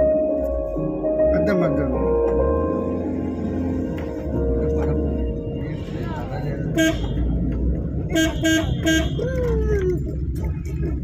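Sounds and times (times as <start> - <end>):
vehicle driving rumble: 0.0 - 11.0
vehicle horn toot: 6.7 - 7.3, 8.1 - 9.2.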